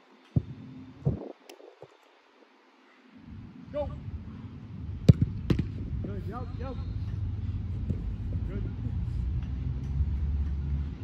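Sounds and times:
football kicked hard: 0:05.0 - 0:05.8
ball striking gloves: 0:05.1 - 0:05.8.

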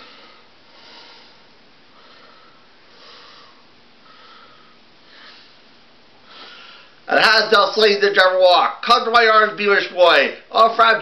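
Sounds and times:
soft breathing: 0:00.0 - 0:07.1.

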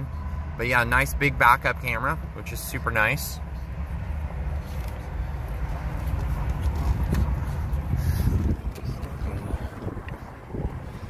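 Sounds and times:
low rumble: 0:03.6 - 0:11.0
microphone handling noise: 0:05.9 - 0:11.0.

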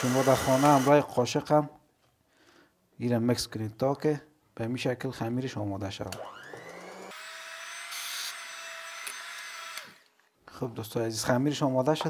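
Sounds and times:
electric hand mixer whining: 0:00.0 - 0:01.0, 0:06.2 - 0:10.1.

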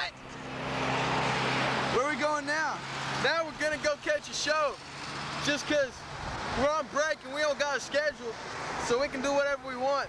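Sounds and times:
car passing: 0:00.0 - 0:10.0.

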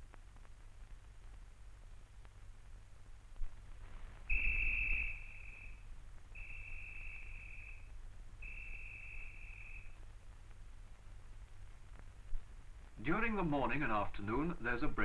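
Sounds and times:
whistle blowing high notes: 0:04.3 - 0:10.0.

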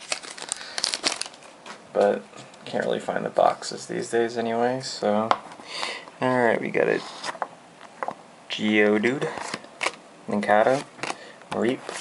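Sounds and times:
foil wrapper crinkling: 0:00.0 - 0:01.6.

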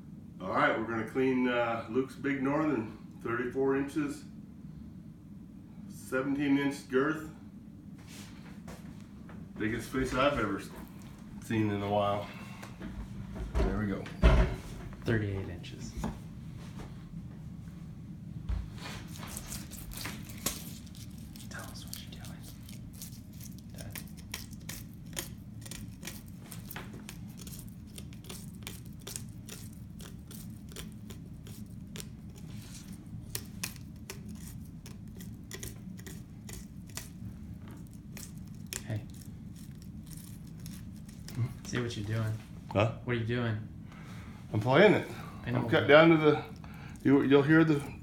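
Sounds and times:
steady low hum: 0:00.0 - 0:48.0
knife cutting through fish bones: 0:19.0 - 0:37.2.

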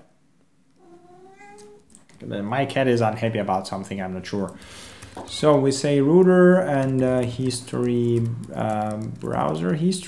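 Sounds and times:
cat meowing: 0:00.8 - 0:01.9.

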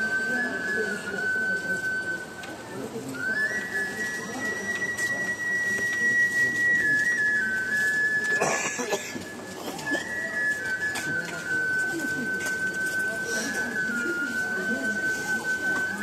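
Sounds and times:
high whistling tone: 0:00.0 - 0:08.4, 0:09.3 - 0:16.0.

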